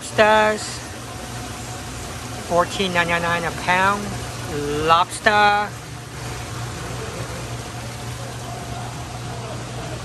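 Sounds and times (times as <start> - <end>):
pumps humming: 0.0 - 10.0
water circulating hiss: 0.0 - 10.0.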